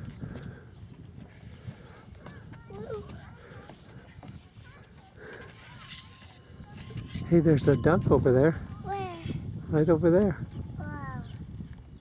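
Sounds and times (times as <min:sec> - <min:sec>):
birds chirping: 0:10.3 - 0:11.2.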